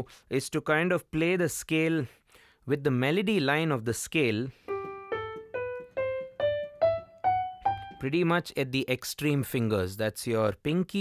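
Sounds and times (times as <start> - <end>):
digital piano playing a scale: 4.6 - 8.4.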